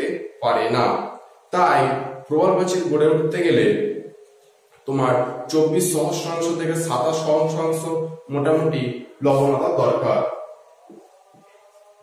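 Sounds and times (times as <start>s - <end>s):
man speaking in drawn-out syllables: 1.6s - 4.0s.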